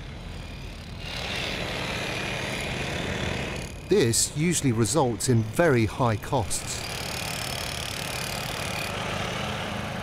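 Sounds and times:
demolition hammer chiselling: 6.6 - 9.5.

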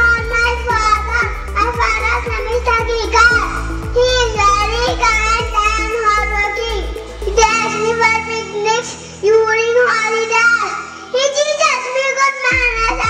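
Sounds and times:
child singing into microphone: 0.0 - 13.0
instrumental backing: 0.0 - 13.0.

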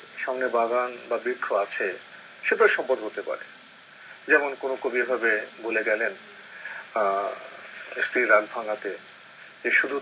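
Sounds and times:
man talking: 0.2 - 3.4, 4.2 - 9.0, 9.6 - 10.0.

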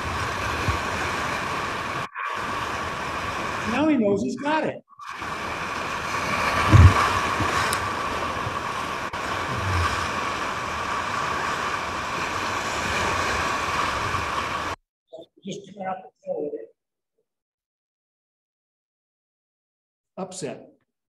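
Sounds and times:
whitewater rushing: 0.0 - 4.2, 5.0 - 14.8
wind buffeting microphone: 5.2 - 14.6.

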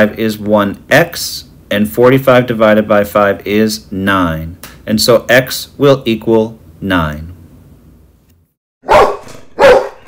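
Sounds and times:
dog barking: 8.8 - 10.0.

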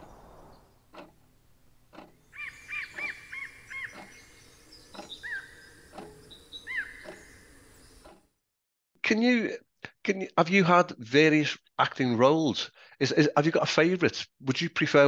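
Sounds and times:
bird chirping: 0.0 - 1.2, 1.9 - 8.2
faint clicks: 0.0 - 1.3, 1.9 - 8.3
soft outdoor hiss: 0.0 - 8.2.

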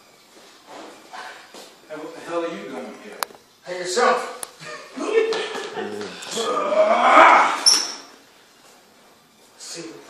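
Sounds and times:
soft indistinct voices: 4.4 - 7.6.

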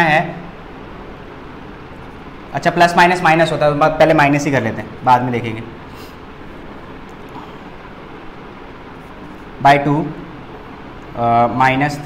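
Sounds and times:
room noise hum and hiss: 0.0 - 12.0.

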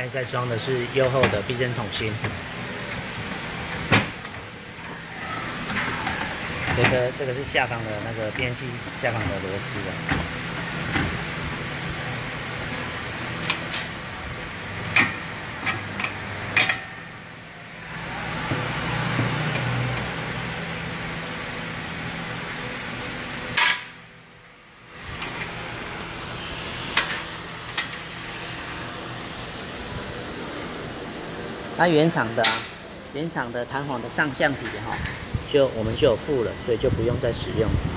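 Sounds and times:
workshop hum: 0.0 - 37.9.

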